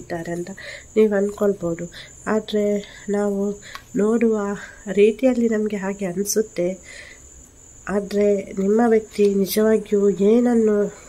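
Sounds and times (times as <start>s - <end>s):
woman speaking: 0.0s - 7.0s, 7.8s - 11.0s
faint high-pitched whine: 0.0s - 11.0s.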